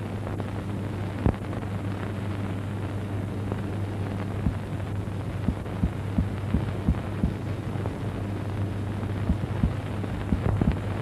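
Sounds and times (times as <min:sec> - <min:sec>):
steady low hum: 0:00.0 - 0:11.0
soft low thumps: 0:05.5 - 0:07.4, 0:09.3 - 0:10.8.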